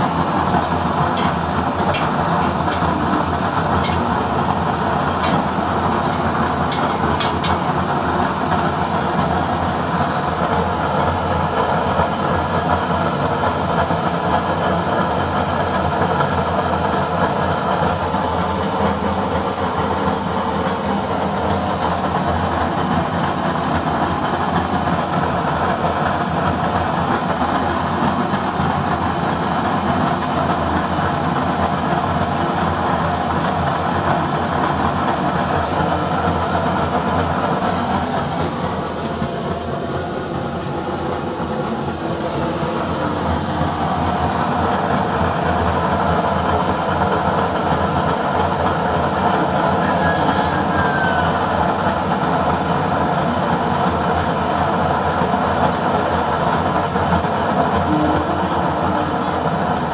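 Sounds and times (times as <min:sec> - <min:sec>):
stove burner flame and fan rushing: 0:00.0 - 0:59.9.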